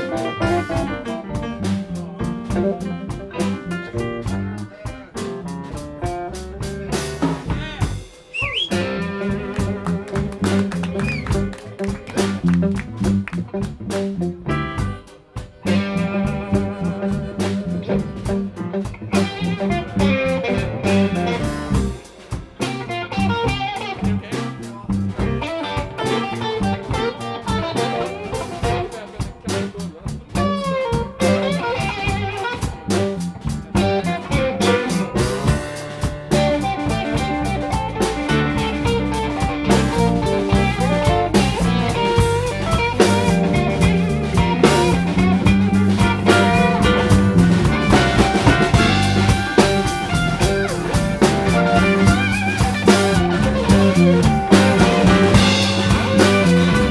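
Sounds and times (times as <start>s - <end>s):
blues band playing: 0.0s - 56.9s
electric guitar: 0.0s - 56.9s.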